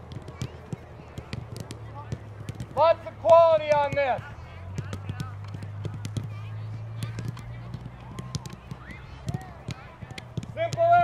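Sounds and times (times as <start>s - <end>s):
faint distant voices: 0.0s - 11.0s
soccer balls kicked thuds: 0.0s - 11.0s.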